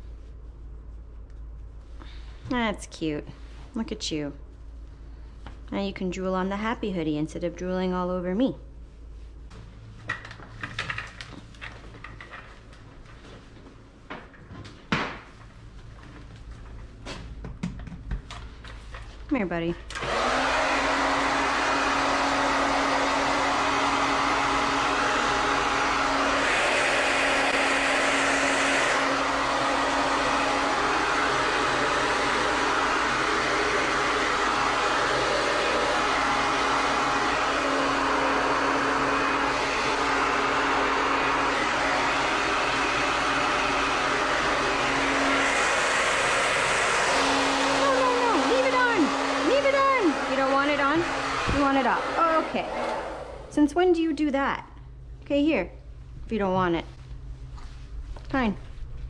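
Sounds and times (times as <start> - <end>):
hair dryer blowing: 19.8 - 54.1.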